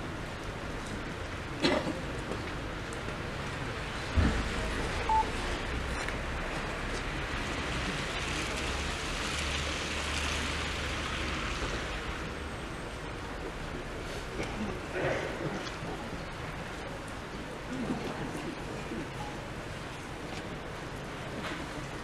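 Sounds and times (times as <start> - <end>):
brief high beep: 5.1 - 5.4.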